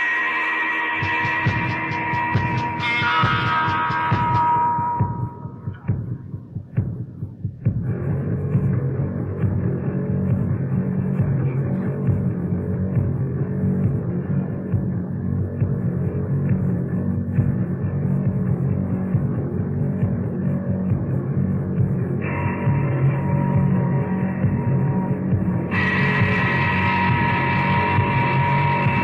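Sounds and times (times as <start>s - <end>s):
rock band playing live: 1.0s - 5.3s, 22.3s - 29.0s.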